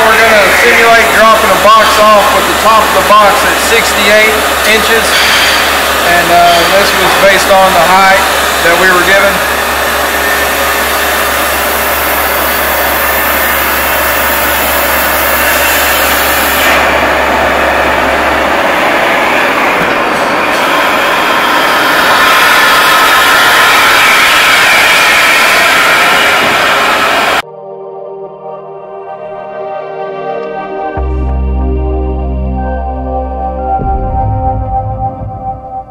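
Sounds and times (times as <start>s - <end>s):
electronic music: 0.0s - 23.3s, 27.4s - 35.9s.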